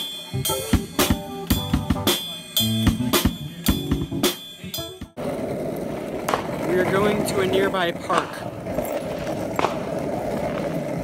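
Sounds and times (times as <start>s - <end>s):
skateboard wheels rolling on asphalt: 5.2s - 11.0s.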